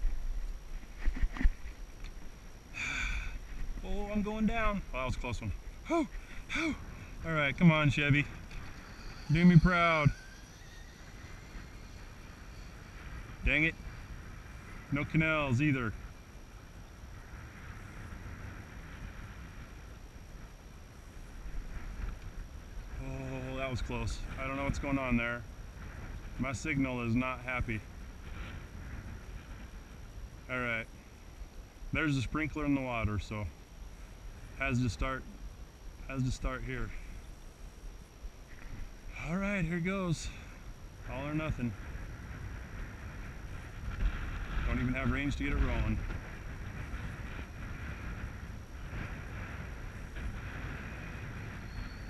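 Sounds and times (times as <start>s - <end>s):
faint hiss: 0.0s - 52.0s
wind buffeting microphone: 0.0s - 52.0s.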